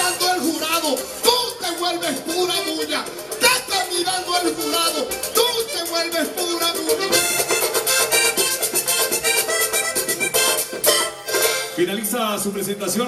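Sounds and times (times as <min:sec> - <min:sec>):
hand percussion and drums: 0:00.0 - 0:11.8
accordion: 0:00.0 - 0:11.9.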